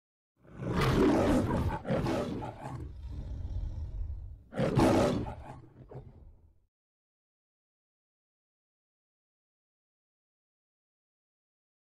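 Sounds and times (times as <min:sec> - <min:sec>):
lion roaring: 0:00.4 - 0:06.4
low rumbling growl: 0:02.6 - 0:04.4.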